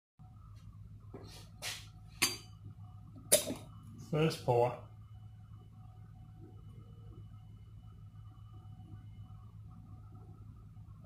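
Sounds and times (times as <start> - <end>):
steady low hum: 0.2 - 11.0.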